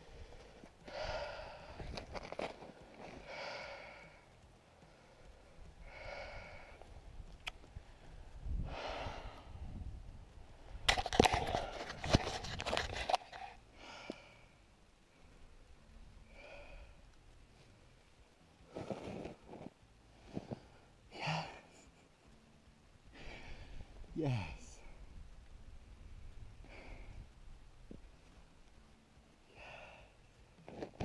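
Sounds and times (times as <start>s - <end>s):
man breathing hard: 0.0s - 2.0s, 3.2s - 6.8s, 8.6s - 9.7s, 13.7s - 14.5s, 26.6s - 27.3s, 29.5s - 30.2s
crunching snow: 18.6s - 20.8s.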